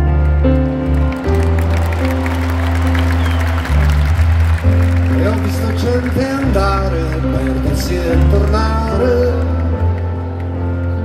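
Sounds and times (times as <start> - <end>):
crowd cheering and clapping: 0.0 - 11.0
live band playing slow song: 0.0 - 11.0.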